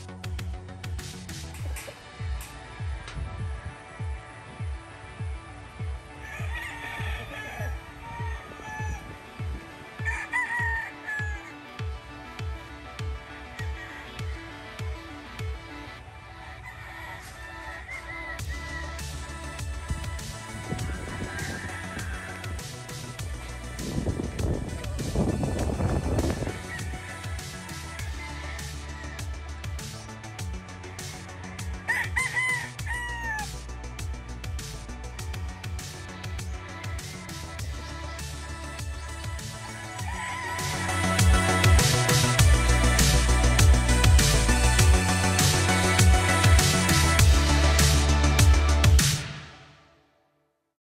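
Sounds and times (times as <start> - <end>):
background music with bass kicks: 0.0 - 15.9, 18.4 - 49.5
rooster crowing: 6.1 - 11.8, 16.4 - 29.5, 31.7 - 33.6, 39.0 - 44.0.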